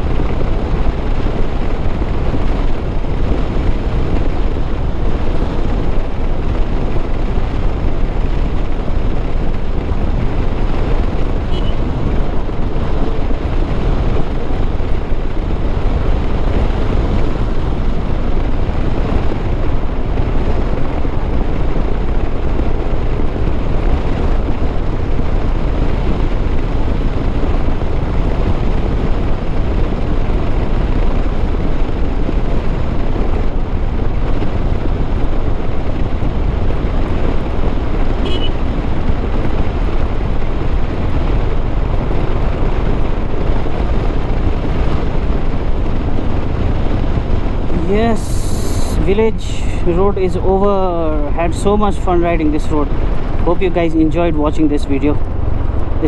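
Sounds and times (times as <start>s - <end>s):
motorcycle engine running: 0.0s - 49.4s, 50.3s - 56.0s
wind rushing over microphone: 0.0s - 56.0s.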